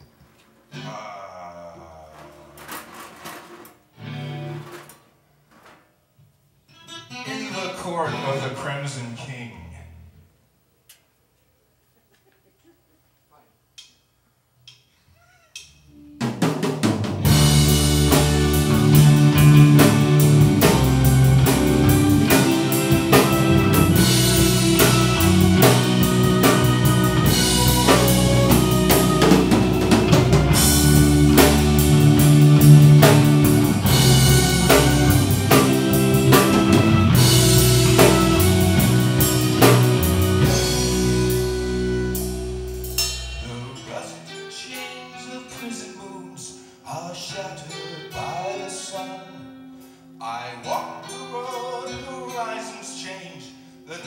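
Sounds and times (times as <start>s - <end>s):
rock band playing: 2.6s - 4.9s, 6.7s - 9.1s, 16.0s - 46.3s.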